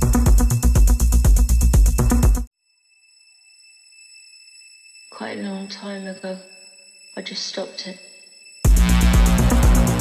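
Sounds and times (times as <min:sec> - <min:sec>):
faint high-pitched tone: 0:02.6 - 0:08.6
electronic dance music: 0:08.7 - 0:10.0.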